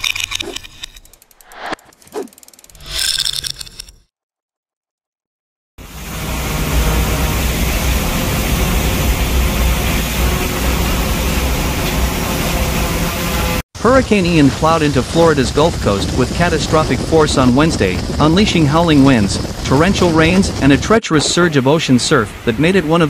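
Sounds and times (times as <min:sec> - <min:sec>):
whooshing sound effects: 0:01.4 - 0:02.3
storm surf: 0:14.4 - 0:23.0
wind buffeting microphone: 0:14.7 - 0:21.5.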